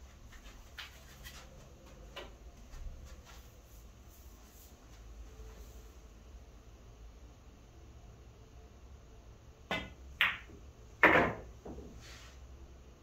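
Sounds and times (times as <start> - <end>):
pool balls clacking: 9.7 - 11.8
pool balls knocking: 9.7 - 11.8.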